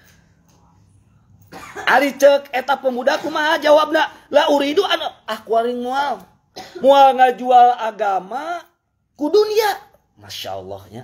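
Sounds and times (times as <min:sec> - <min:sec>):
man coughing: 0:01.4 - 0:02.2, 0:03.0 - 0:03.6, 0:06.5 - 0:07.1
man speaking: 0:01.8 - 0:11.0.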